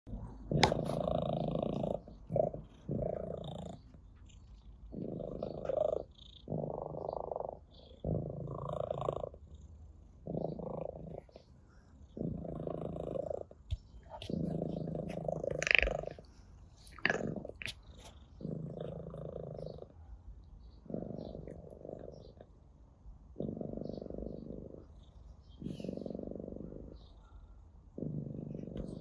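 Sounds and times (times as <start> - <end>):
cat purring: 0.1 - 20.1, 20.7 - 29.0.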